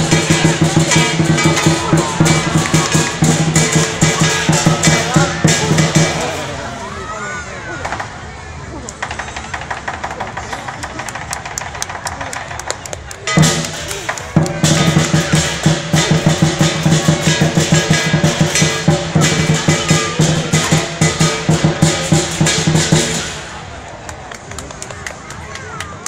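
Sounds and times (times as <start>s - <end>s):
big drum beating: 0.0s - 6.7s, 13.2s - 24.0s
cymbals clashing: 0.0s - 6.9s, 13.3s - 23.9s.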